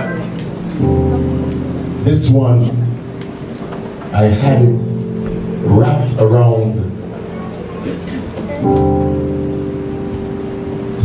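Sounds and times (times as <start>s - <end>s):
sustained keyboard chord: 0.0s - 11.0s.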